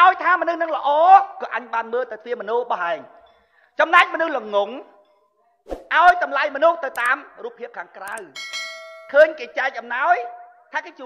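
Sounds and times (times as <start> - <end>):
man speaking: 5.9 - 8.4, 9.1 - 11.0
bell-like notification chime: 8.3 - 9.2.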